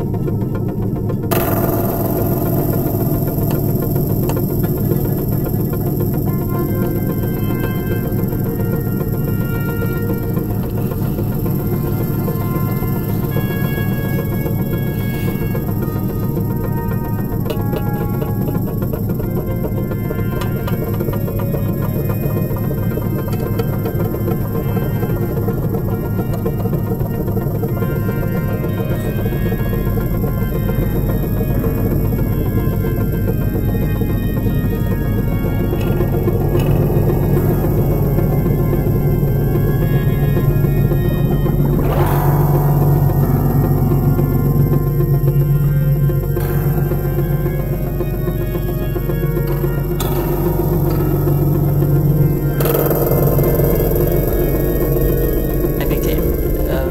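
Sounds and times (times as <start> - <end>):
low drone: 0.0 - 56.9
deep bass layer: 1.2 - 20.1, 24.0 - 56.9
short held tones: 1.3 - 56.9.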